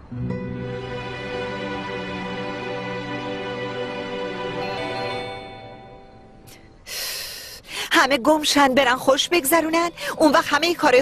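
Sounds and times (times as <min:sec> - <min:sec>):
background music: 0:00.0 - 0:07.2.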